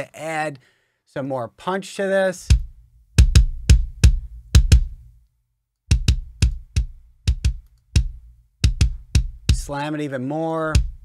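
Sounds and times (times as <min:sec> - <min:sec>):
compressed kick drum pattern: 0:02.5 - 0:05.2, 0:05.9 - 0:09.9, 0:10.7 - 0:11.0.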